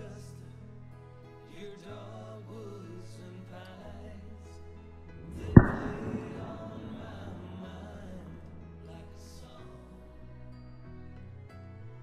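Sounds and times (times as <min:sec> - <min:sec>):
song playing: 0:05.2 - 0:09.3.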